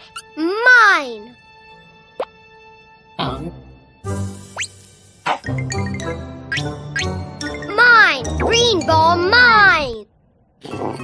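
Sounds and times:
soft cartoon background music: 0.0 - 11.0.

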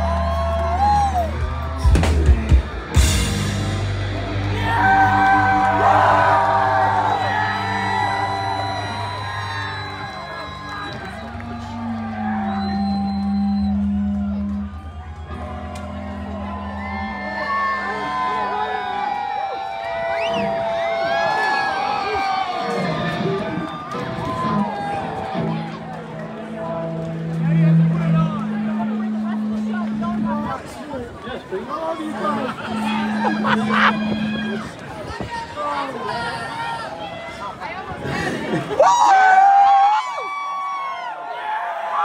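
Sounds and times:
crowd cheering and whooping: 0.0 - 42.0
rock band guitars ringing: 1.4 - 11.8, 32.1 - 34.8.

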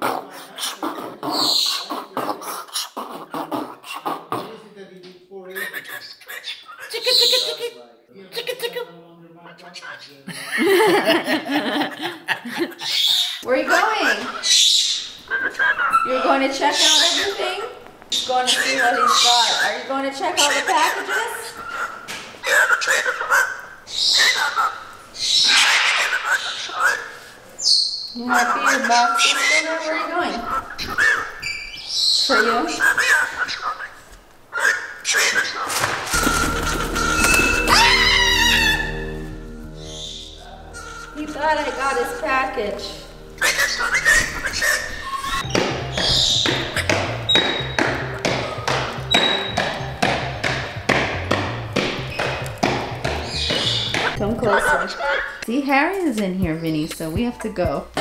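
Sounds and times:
cockatoo screeching: 0.0 - 4.4, 5.5 - 7.6, 12.8 - 47.7, 53.2 - 55.4
breathy speech-like chatter: 0.0 - 10.3
high whistle-like tone: 36.2 - 41.2.

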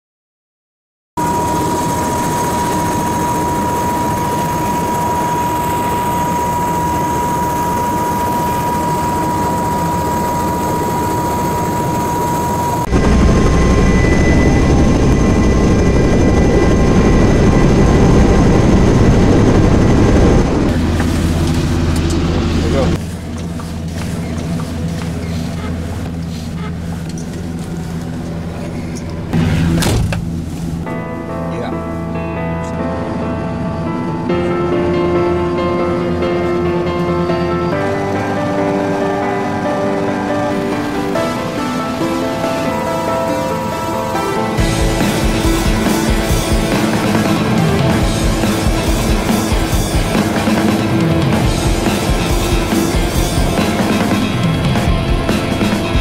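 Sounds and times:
engine with high whine: 1.2 - 30.9.

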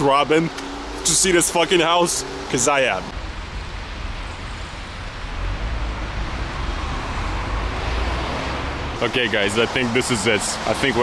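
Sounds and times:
busy road traffic rumble: 0.0 - 11.0.

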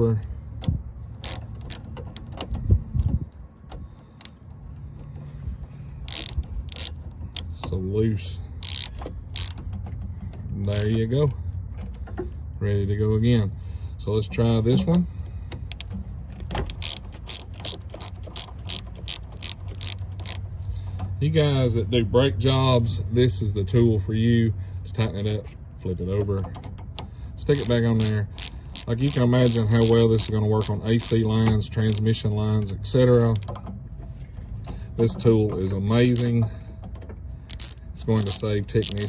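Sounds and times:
low background rumble: 0.0 - 39.0
ratcheting wrench clicking: 0.6 - 3.4, 6.0 - 7.7, 8.6 - 10.0, 10.6 - 11.0, 15.4 - 20.6, 26.4 - 32.3, 33.0 - 33.7, 34.6 - 36.4, 37.4 - 39.0.

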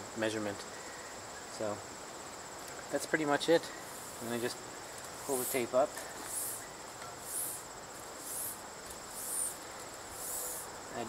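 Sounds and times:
thin high insect trill: 0.0 - 11.0
insect rising and falling buzz: 3.8 - 10.9.

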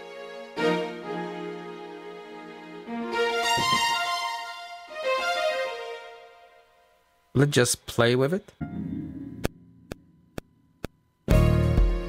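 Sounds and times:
keyboard notes: 0.0 - 7.0, 8.6 - 10.4
metronome ticks: 9.4 - 11.0.

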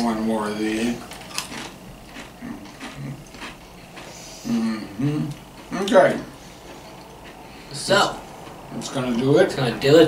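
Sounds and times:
crisps being chewed: 0.8 - 9.3.

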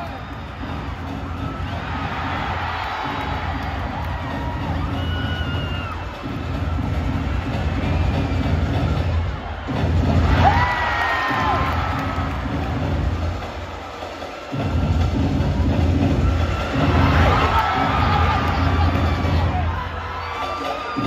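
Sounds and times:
crowd cheering and screaming: 0.0 - 21.0.

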